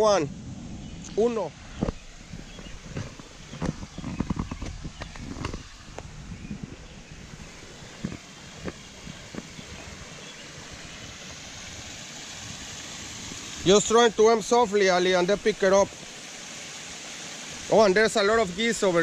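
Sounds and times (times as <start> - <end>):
steady background hiss: 0.0 - 19.0
footsteps on wooden footbridge: 1.8 - 10.1.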